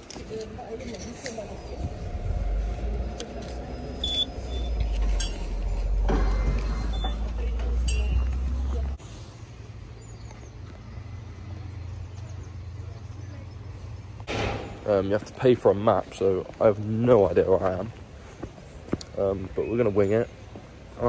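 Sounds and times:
low rumble: 0.6s - 13.0s, 13.6s - 16.2s
ticket scanner beep: 4.0s - 4.8s.

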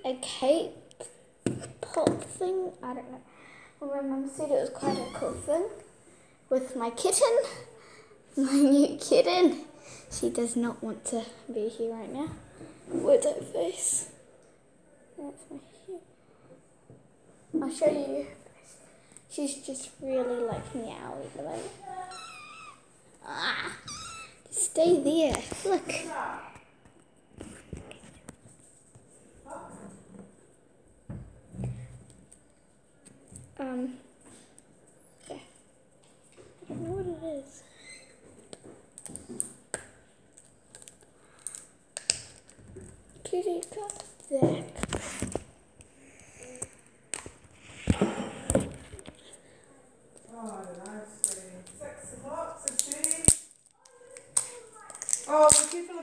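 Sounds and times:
plastic clicks and cracks: 52.6s - 55.8s.

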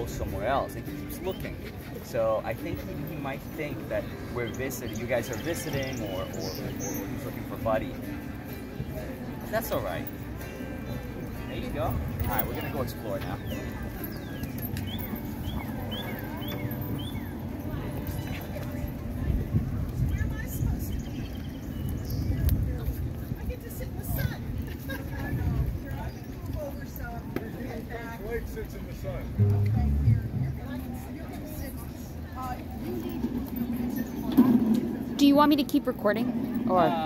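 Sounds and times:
people talking indistinctly: 0.0s - 37.0s
bird chirping: 12.4s - 17.3s
low outdoor rumble: 29.3s - 31.3s.

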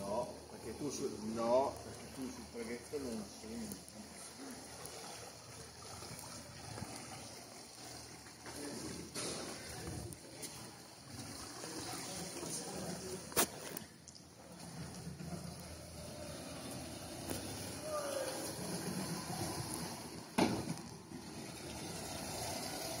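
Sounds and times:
water sloshing and lapping: 0.0s - 23.0s.

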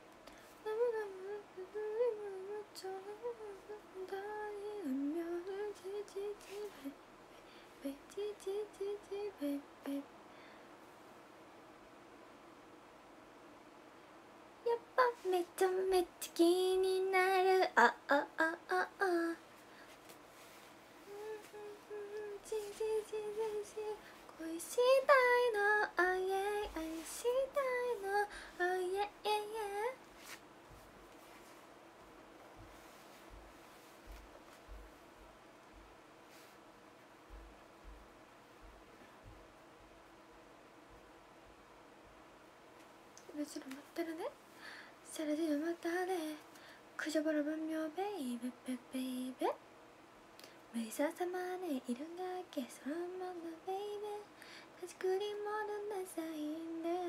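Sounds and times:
woman singing unaccompanied: 0.0s - 7.0s, 7.8s - 10.1s, 14.6s - 19.6s, 20.4s - 30.4s, 43.2s - 49.6s, 50.7s - 57.0s
woman humming a melody: 21.0s - 30.0s.

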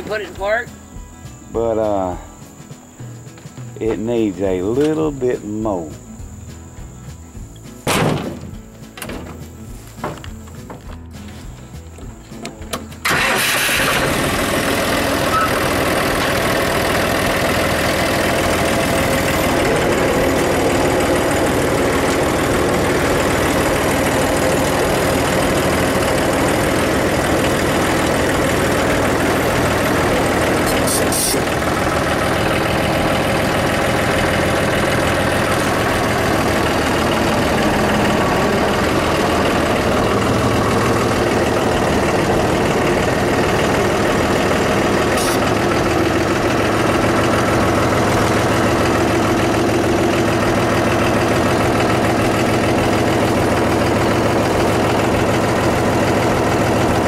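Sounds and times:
tractor engine running: 0.0s - 57.0s
tyres on gravel: 6.9s - 57.0s.

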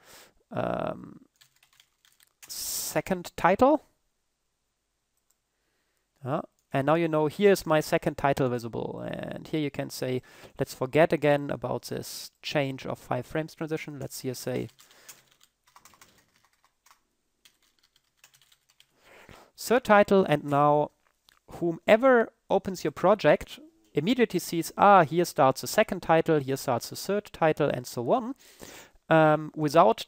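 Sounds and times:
computer keyboard keystrokes: 1.4s - 2.4s, 14.6s - 18.9s.

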